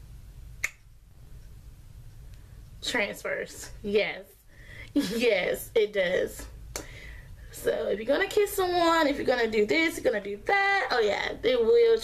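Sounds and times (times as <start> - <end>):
lip smack: 0.6 - 0.9.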